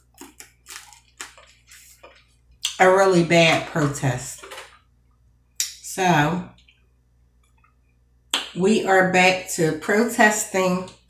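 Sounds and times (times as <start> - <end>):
wet eating smacks and crunches: 0.0 - 2.8.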